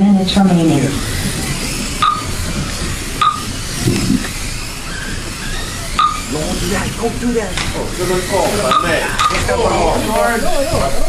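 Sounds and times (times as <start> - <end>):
electric toy cars whirring: 0.0 - 11.0
faint voices: 0.0 - 11.0
short high beeps: 2.0 - 2.3, 3.2 - 3.4, 6.0 - 6.2, 8.6 - 9.4.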